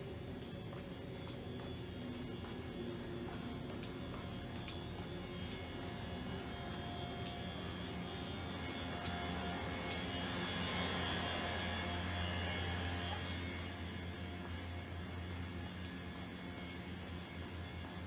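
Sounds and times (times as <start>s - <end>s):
steady mechanical hum: 0.0s - 18.0s.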